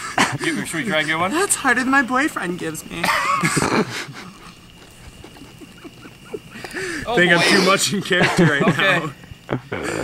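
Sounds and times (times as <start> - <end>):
man's stifled chuckles: 3.1 - 6.7.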